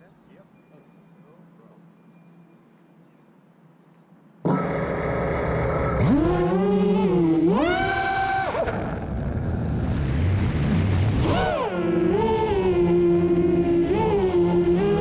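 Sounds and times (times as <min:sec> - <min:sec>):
drone motors whining: 0:04.4 - 0:10.0, 0:11.1 - 0:15.0.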